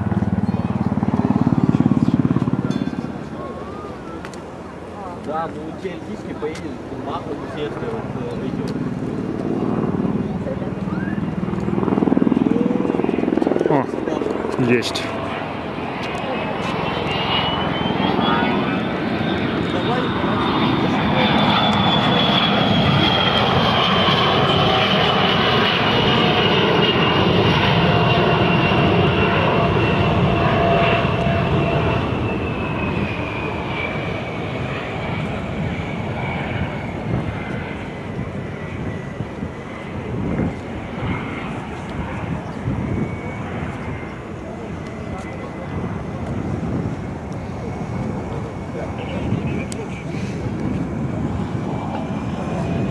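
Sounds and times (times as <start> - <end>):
high engine whine: 0.0 - 52.9
jet engines passing low: 0.0 - 52.9.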